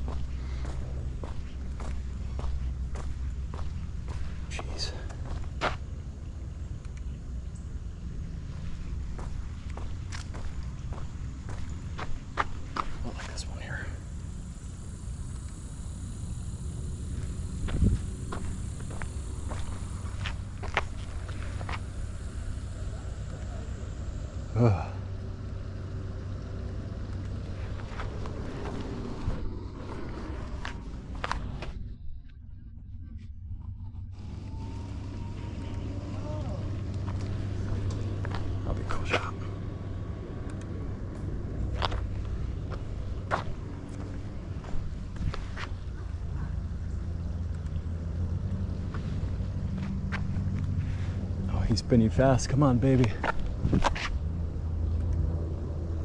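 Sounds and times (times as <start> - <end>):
low rumble: 0.0 - 52.1.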